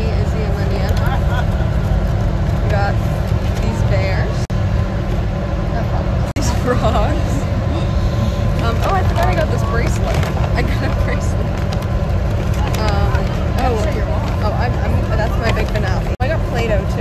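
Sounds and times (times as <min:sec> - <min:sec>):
voices talking: 0:00.0 - 0:04.5, 0:05.4 - 0:17.0
bus rumbling inside cabin: 0:00.0 - 0:17.0.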